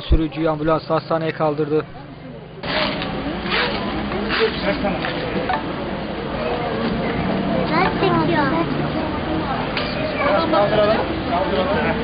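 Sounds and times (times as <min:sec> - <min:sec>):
rustling and scraping: 0:02.6 - 0:05.4
people talking: 0:03.2 - 0:12.0.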